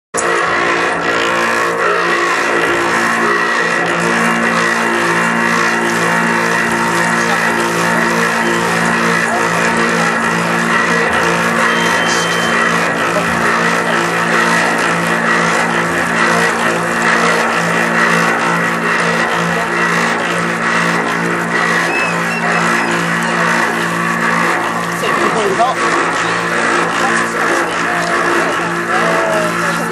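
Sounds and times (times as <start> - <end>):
brass pan droning hum: 0.2 - 29.9.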